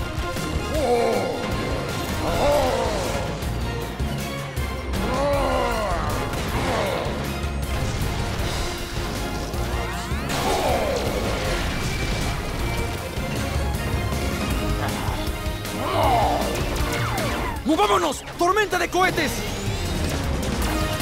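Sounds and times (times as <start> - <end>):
action music: 0.0 - 21.0.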